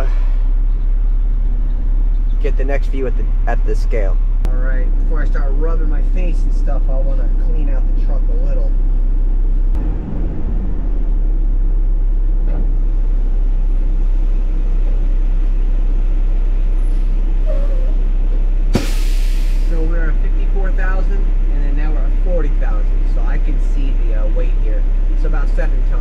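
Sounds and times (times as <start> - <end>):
truck engine running: 0.0 - 26.0
air brakes hiss: 18.8 - 19.7.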